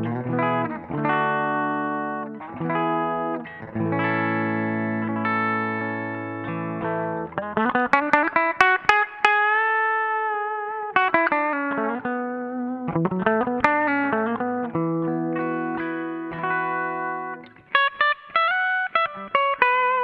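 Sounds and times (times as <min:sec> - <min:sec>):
clean electric guitar: 0:00.0 - 0:20.0.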